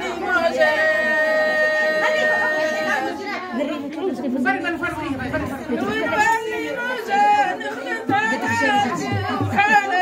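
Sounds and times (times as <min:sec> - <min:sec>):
women chattering: 0:00.0 - 0:10.0.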